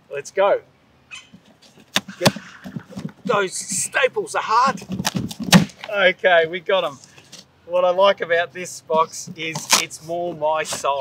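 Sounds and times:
cardboard scraping and rustling: 4.7s - 5.9s.

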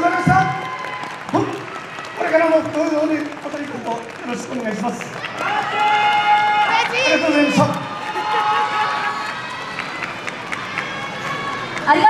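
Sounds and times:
group cheering and shouting: 5.1s - 12.0s.

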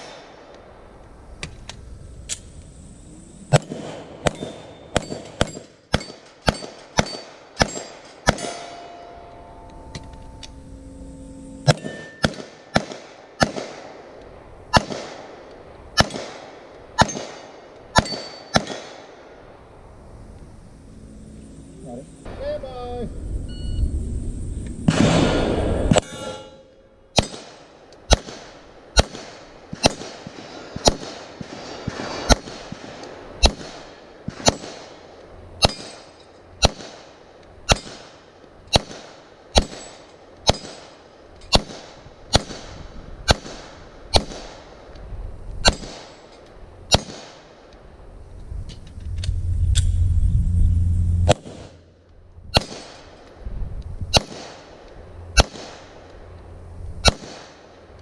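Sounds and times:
handgun shots: 3.5s - 8.8s, 11.6s - 13.8s, 17.0s - 19.0s, 45.6s - 46.2s, 52.6s - 53.1s, 54.1s - 54.6s, 55.4s - 55.8s, 57.0s - 57.6s
steel targets clanging: 4.3s - 10.8s, 11.5s - 12.4s, 25.9s - 27.4s.

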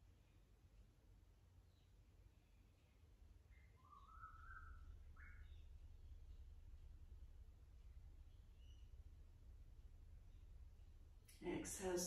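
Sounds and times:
low steady room hum: 0.0s - 12.0s
faint bird calls: 1.7s - 6.7s.

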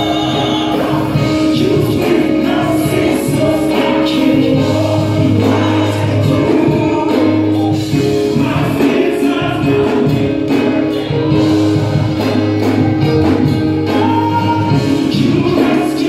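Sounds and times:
man singing into microphone: 0.0s - 11.3s, 13.8s - 16.0s
amplified accompaniment with bass: 0.0s - 16.0s
backing voices singing: 0.0s - 16.0s.

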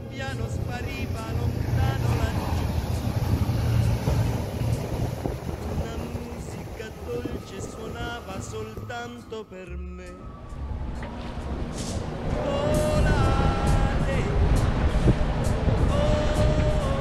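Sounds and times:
boat engine rumble: 0.0s - 17.0s
wind buffeting microphone: 0.0s - 17.0s.

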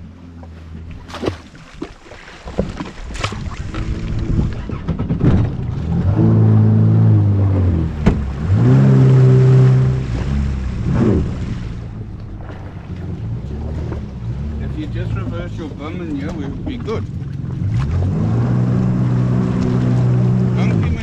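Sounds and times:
water noise: 0.0s - 21.0s
wind noise: 2.5s - 6.6s
jet ski engine running: 2.5s - 21.0s.

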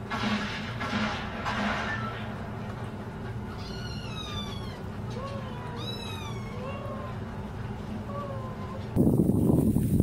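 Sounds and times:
kittens mewing: 3.5s - 7.4s.

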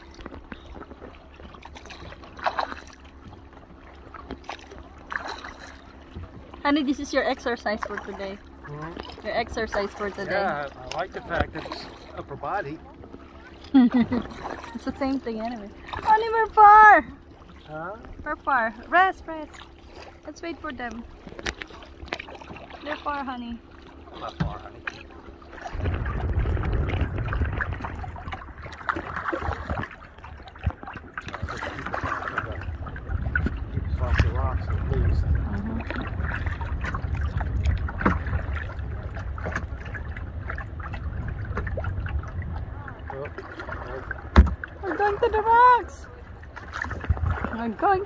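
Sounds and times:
kayak paddles splashing: 0.0s - 48.0s
low rumble: 0.0s - 48.0s
knocks against the hull: 24.1s - 25.0s, 25.6s - 42.5s, 43.4s - 44.8s.

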